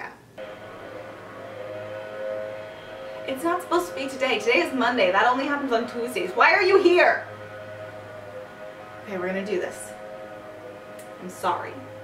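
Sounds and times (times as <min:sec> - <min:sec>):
warning siren: 0:00.4 - 0:12.0.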